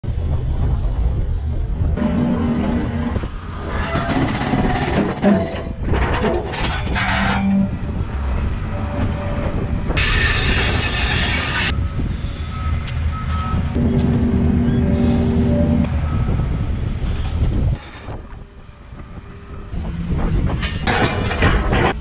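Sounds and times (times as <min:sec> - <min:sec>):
excavator engine running: 0:00.1 - 0:10.7, 0:11.7 - 0:22.0.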